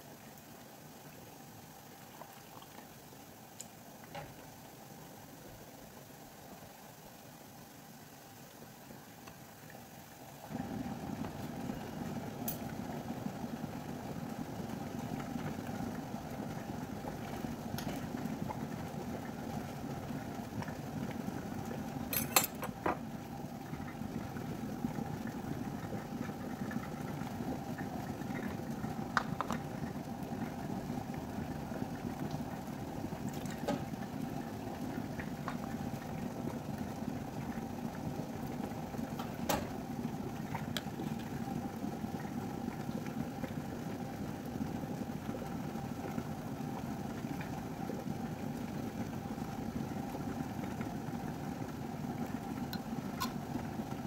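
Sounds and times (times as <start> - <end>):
glass jars and metal lid clinking: 22.2 - 22.8.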